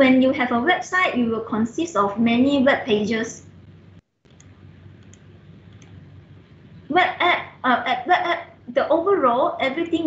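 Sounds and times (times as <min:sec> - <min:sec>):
low steady hum: 0:00.0 - 0:10.0
faint mouse clicks: 0:04.3 - 0:06.0.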